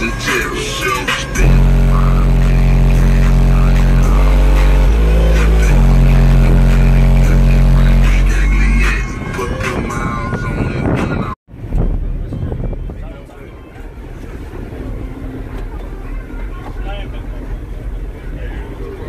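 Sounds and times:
loud deep subwoofer bass: 1.4 - 9.0.

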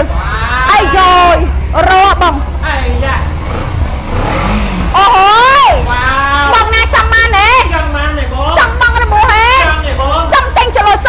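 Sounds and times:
motorcycle engine running: 0.0 - 11.0
woman speaking: 0.4 - 2.5, 5.0 - 5.8, 6.4 - 7.7, 8.5 - 11.0.

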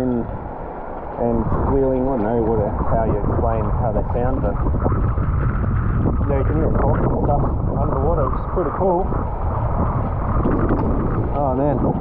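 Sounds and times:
choppy water sloshing: 0.0 - 12.0
wind buffeting microphone: 0.0 - 12.0.

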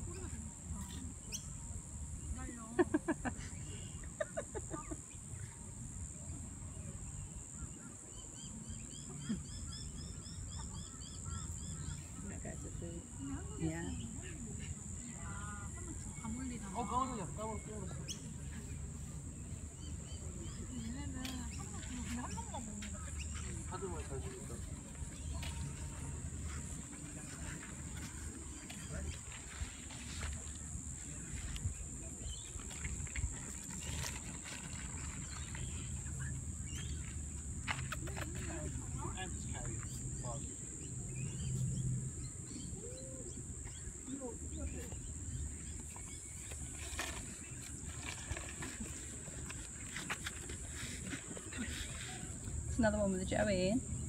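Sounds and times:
faint distant voices: 0.0 - 53.9.

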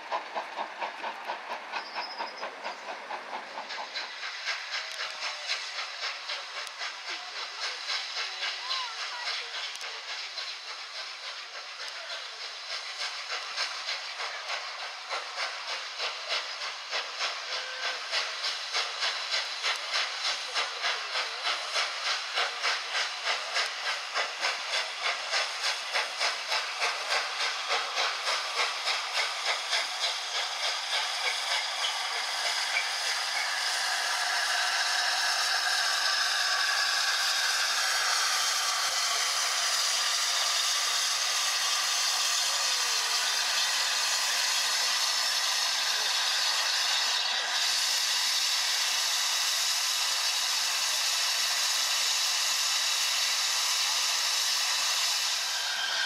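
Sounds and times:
locomotive rumble: 0.0 - 48.3
steam hiss: 0.0 - 56.0
steam locomotive exhaust beats: 0.0 - 56.0.

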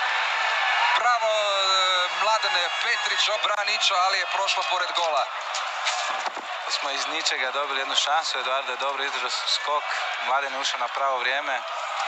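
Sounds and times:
stadium crowd noise: 0.0 - 12.0
man commentating excitedly: 0.8 - 5.3.

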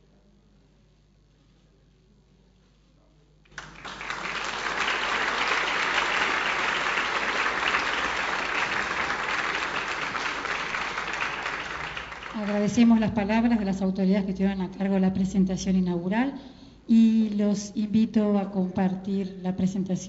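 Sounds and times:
audience applause: 3.5 - 13.0.

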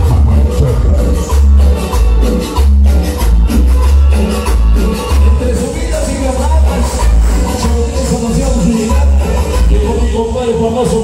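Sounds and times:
loud latin dance music: 0.0 - 11.0.

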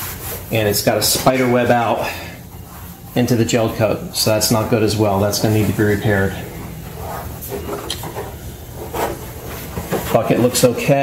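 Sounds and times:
shop background noise: 0.0 - 11.0
hands rubbing fiberglass: 6.8 - 11.0.

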